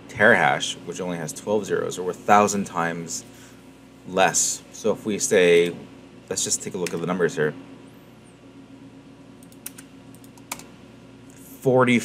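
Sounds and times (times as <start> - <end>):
typing on computer keyboard: 9.4 - 10.7.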